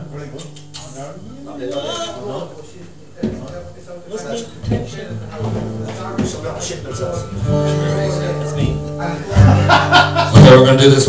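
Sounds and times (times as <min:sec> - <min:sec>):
acoustic guitar strumming: 0:04.6 - 0:11.0
guitar chord ringing: 0:07.0 - 0:11.0.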